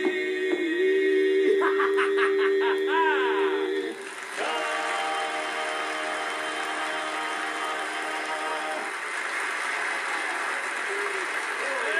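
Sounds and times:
vocal quartet holding a chord: 0.0s - 9.0s
audience applause: 3.9s - 11.9s.

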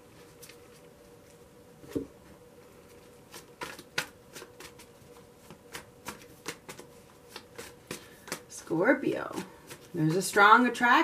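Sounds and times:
cards being shuffled by hand: 2.7s - 10.2s.

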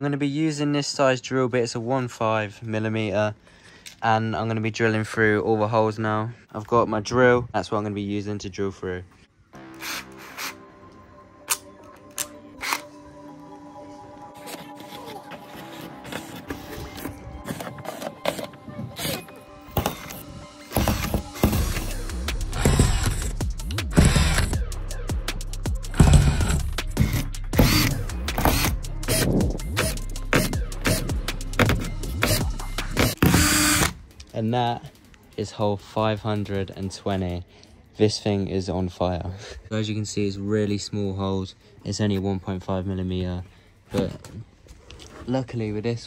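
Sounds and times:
background music: 9.3s - 39.4s
cordless drill drilling bursts: 9.7s - 10.6s, 19.0s - 22.0s, 22.6s - 23.3s, 23.9s - 24.6s, 26.0s - 31.0s, 32.2s - 34.0s.

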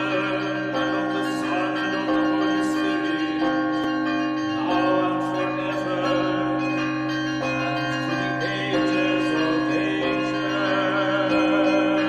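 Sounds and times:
church bells ringing: 0.0s - 12.0s.

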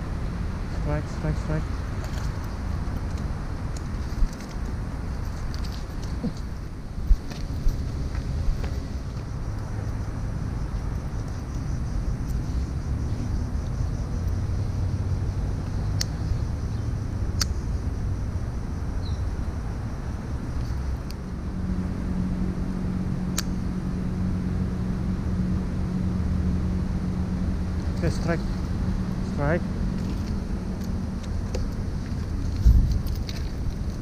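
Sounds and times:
low outdoor rumble: 0.0s - 34.0s.

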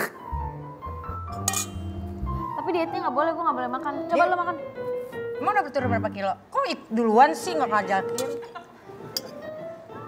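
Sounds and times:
fork clinking on metal tray: 1.3s - 2.0s, 8.1s - 8.6s, 9.2s - 9.4s.

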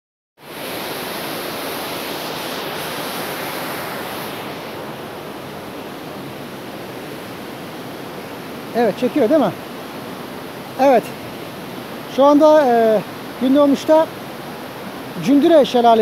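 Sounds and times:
waterfall rushing: 0.4s - 16.0s.

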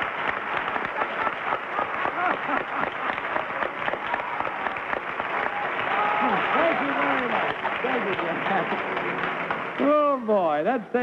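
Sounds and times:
audience applauding: 0.0s - 10.5s.

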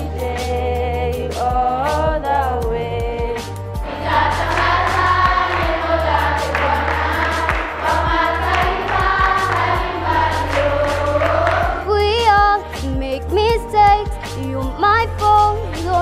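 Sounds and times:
children's choir singing: 3.8s - 12.6s
hand-clapping: 4.4s - 11.9s.

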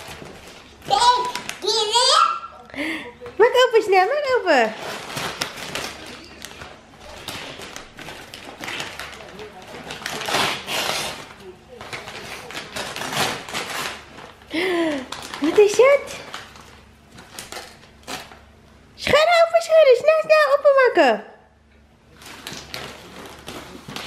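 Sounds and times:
wrapping paper tearing and crinkling: 0.0s - 2.2s, 4.6s - 18.5s, 22.1s - 24.0s.

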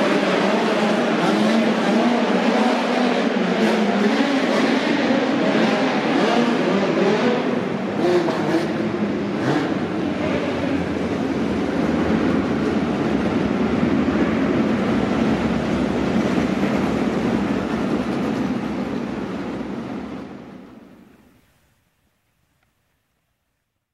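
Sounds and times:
race car engines running hard: 0.0s - 21.0s.

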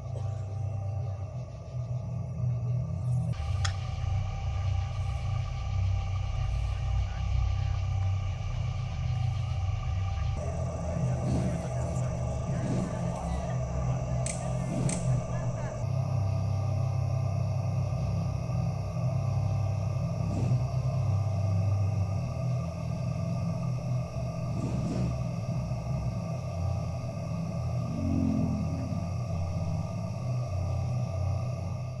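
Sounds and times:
ambient electronic music: 0.0s - 32.0s.

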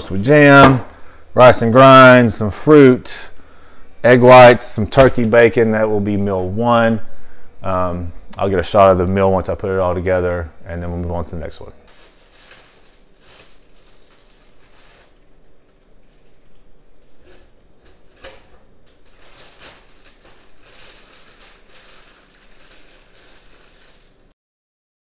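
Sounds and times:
faint room hum: 0.0s - 24.4s.

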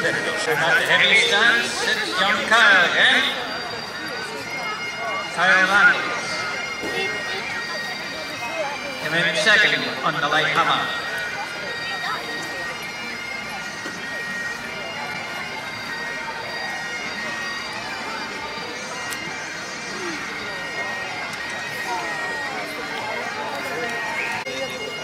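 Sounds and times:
bagpipes playing over drone: 0.0s - 25.0s
crowd chatter: 0.0s - 25.0s.

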